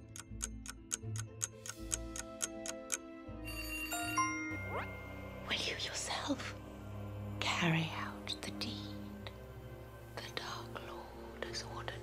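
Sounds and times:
low music drone: 0.0 - 12.0.

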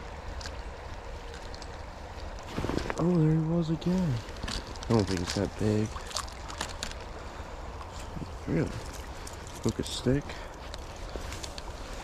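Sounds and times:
creek water rushing: 0.0 - 12.0
low water rumble: 0.0 - 12.0.

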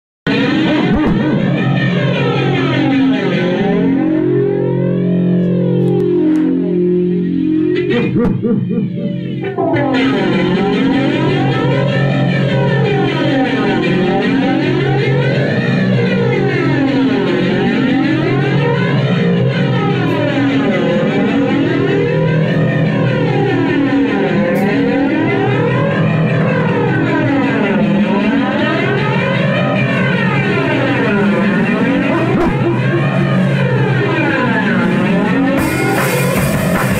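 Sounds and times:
band playing distorted drone: 0.3 - 36.9.

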